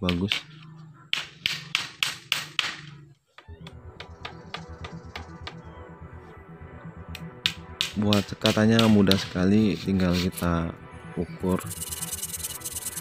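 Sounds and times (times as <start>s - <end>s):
hammer striking nails: 0.0s - 2.9s
background music: 0.0s - 13.0s.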